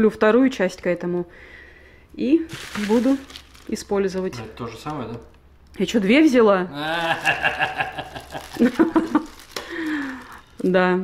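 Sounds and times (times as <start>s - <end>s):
short chuckling laughter: 6.9s - 9.3s.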